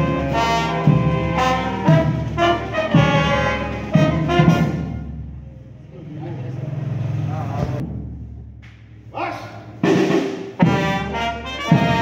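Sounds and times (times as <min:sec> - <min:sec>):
people's voices: 0:05.3 - 0:07.8.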